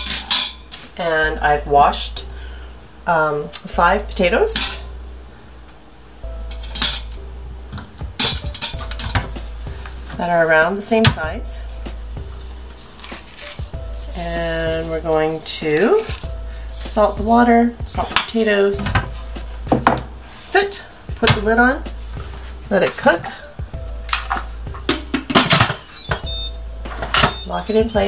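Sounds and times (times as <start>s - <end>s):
soft background music: 0.0s - 28.0s.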